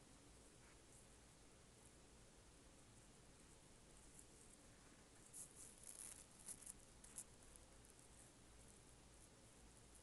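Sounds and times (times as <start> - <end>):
makeup brush scratching on skin: 5.2 - 10.0.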